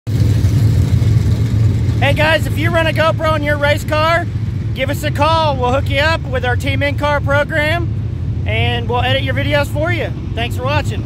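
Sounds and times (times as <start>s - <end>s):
race car engines droning: 0.1s - 11.0s.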